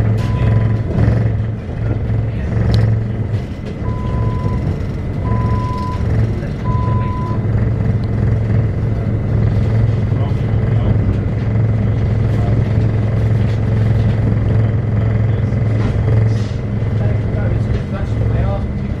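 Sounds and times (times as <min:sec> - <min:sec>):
train wheels rumbling: 0:00.0 - 0:19.0.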